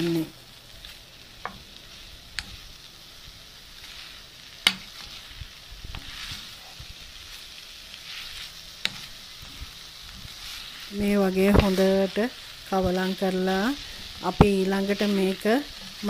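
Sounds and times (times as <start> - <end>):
beans sizzling in oil: 0.0 - 16.0.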